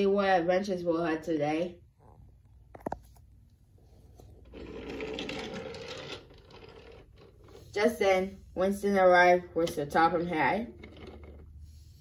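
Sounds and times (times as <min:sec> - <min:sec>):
toy train motor whirring: 0:04.5 - 0:07.6.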